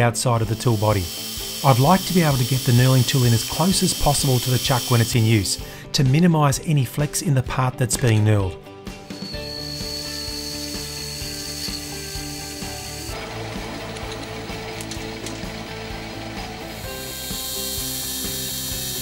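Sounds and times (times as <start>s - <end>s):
lathe cutting steel: 0.4s - 5.6s, 9.2s - 19.0s
lathe gear train whining: 0.4s - 5.6s, 9.1s - 19.0s.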